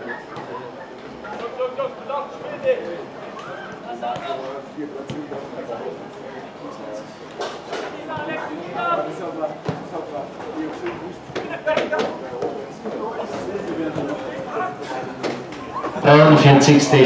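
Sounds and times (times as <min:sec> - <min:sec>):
spectators chattering: 0:00.0 - 0:17.0.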